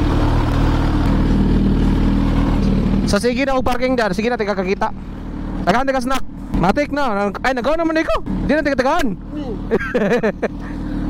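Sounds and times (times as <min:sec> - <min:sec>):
motorcycle engine idling: 0:00.0 - 0:11.0
people talking: 0:03.1 - 0:04.9, 0:05.7 - 0:10.1.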